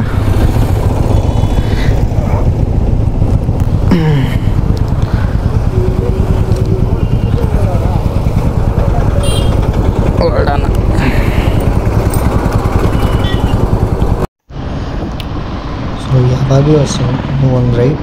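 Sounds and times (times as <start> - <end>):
motorcycle engine cruising: 0.0 - 14.3
wind noise on microphone: 0.0 - 18.0.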